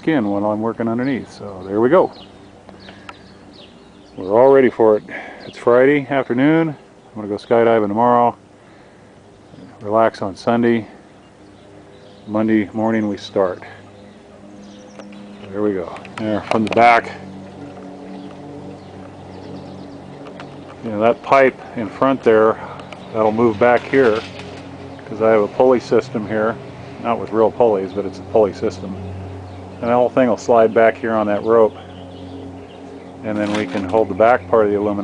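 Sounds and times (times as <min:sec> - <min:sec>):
low machine hum: 0:00.0 - 0:35.0.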